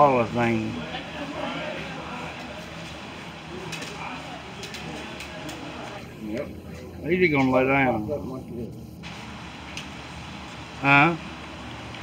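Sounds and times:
murmur of background voices: 0.0 - 12.0.

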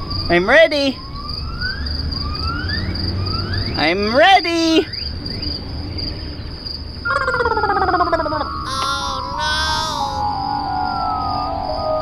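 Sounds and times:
insects chirring: 3.8 - 11.4.

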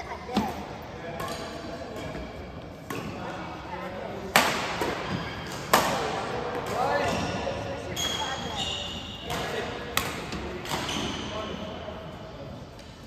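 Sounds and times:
racket hitting shuttlecock: 4.3 - 7.2
shoes squeaking on court: 6.8 - 9.6.

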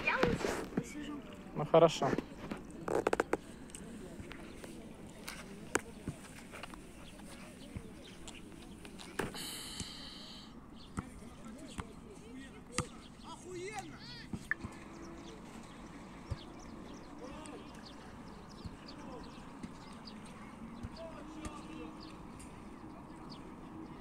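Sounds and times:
distant voices: 0.0 - 24.0.

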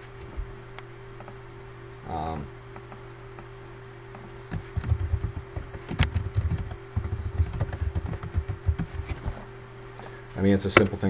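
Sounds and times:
typing on computer keyboard: 4.6 - 9.0.

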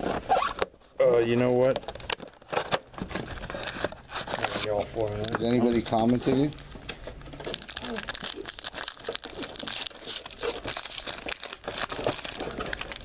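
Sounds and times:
foil packs crinkling and tearing: 0.0 - 6.6, 7.4 - 13.0.

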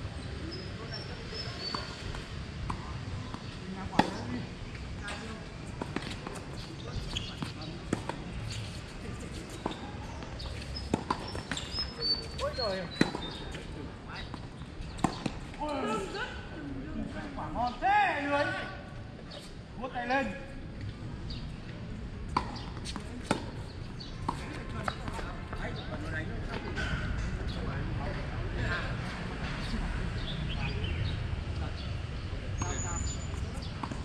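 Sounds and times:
tennis balls struck by rackets: 1.6 - 4.5, 5.1 - 13.6, 14.2 - 15.7, 22.2 - 25.9, 33.6 - 34.0.

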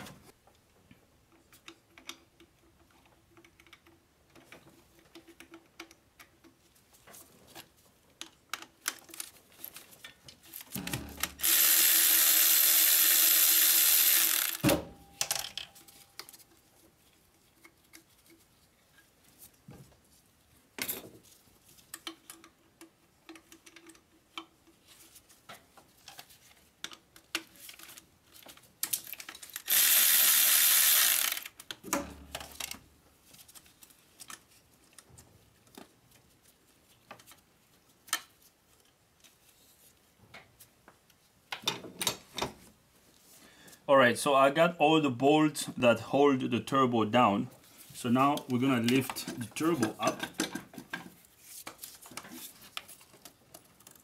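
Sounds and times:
cordless electric ratchet running: 11.2 - 14.7, 29.6 - 31.5.

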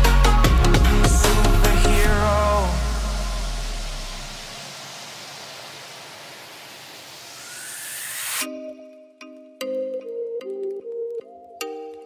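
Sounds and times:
deep bass note: 0.5 - 4.5
white noise wash: 2.0 - 8.5.

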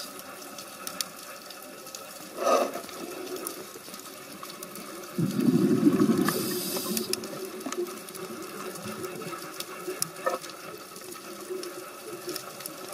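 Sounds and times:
underwater crackle of clicks: 0.0 - 12.9
scuba bubbles rushing: 5.0 - 8.0.

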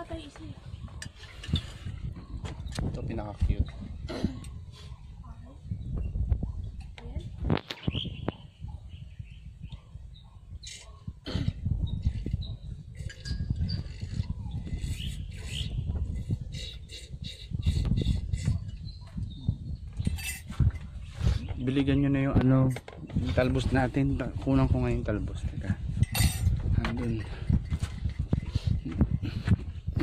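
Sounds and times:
low rumble of handheld camera: 0.0 - 30.0
small birds chirping: 0.1 - 22.4.

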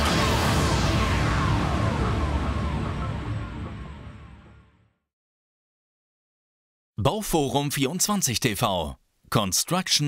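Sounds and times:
background music with falling glides: 0.0 - 4.9.

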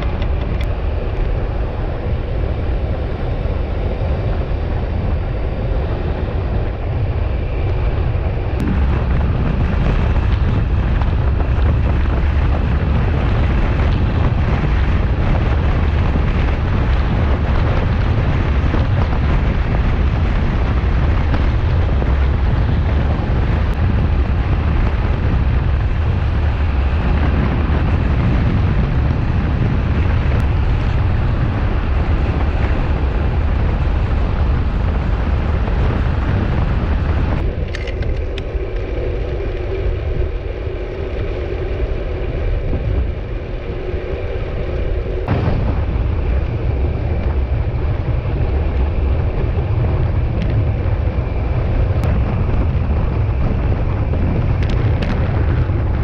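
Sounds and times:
wind rushing over microphone: 0.0 - 56.0.

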